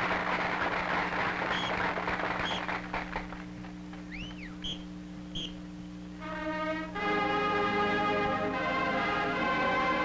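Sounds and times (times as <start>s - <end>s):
noisy din: 0.0s - 7.2s
steady low hum: 0.0s - 10.0s
rising and falling whistle: 4.1s - 5.6s
short high whistle toots: 4.1s - 5.6s.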